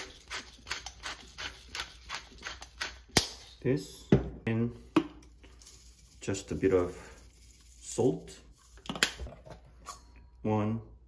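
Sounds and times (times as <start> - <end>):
pepper mill grinding: 0.0 - 3.6.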